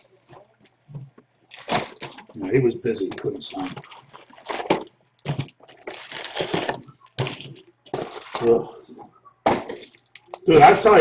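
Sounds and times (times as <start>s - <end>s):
card pack wrappers crinkling: 1.5s - 2.4s, 3.4s - 8.6s.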